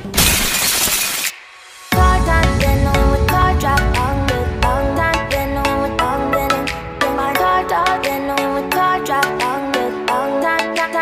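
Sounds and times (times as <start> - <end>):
glass shattering: 0.1 - 1.4
music with steady beat: 1.9 - 11.0.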